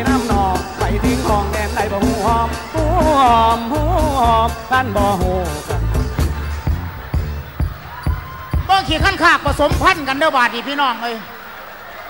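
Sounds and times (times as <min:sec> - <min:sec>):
low bass line: 0:00.0 - 0:07.9
drum beats: 0:00.0 - 0:10.2.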